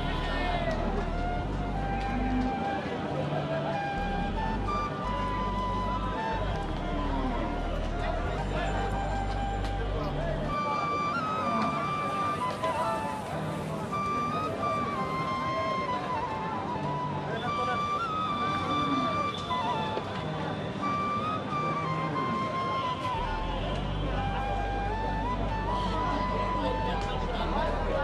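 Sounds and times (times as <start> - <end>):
melody of long held notes: 0.0 - 28.0.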